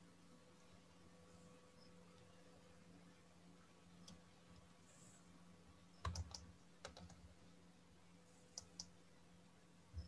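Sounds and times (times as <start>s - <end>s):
computer keyboard and mouse clicks: 6.0s - 7.3s, 8.5s - 9.0s.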